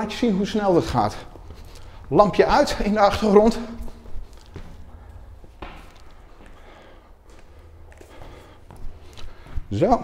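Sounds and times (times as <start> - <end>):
low room hum: 0.0 - 10.0
faint footsteps on stairs: 0.7 - 10.0.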